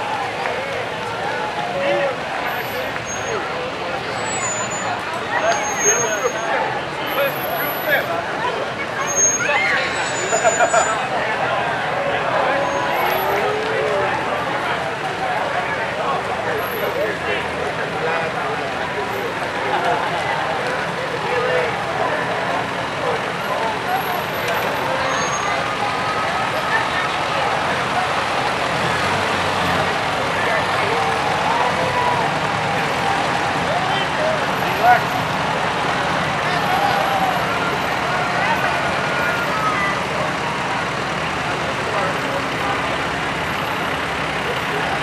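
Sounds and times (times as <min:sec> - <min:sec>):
people chatting: 0:00.0 - 0:45.0
people talking: 0:00.0 - 0:45.0
tractors running: 0:00.0 - 0:45.0.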